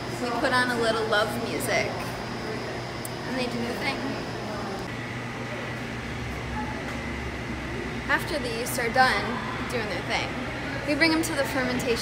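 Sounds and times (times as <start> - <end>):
mechanical hum and hiss: 0.0 - 12.0.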